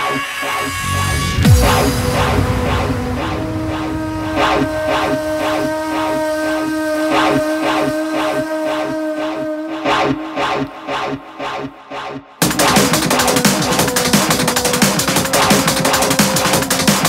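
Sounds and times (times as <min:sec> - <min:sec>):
held synth chord: 0:00.9 - 0:09.8.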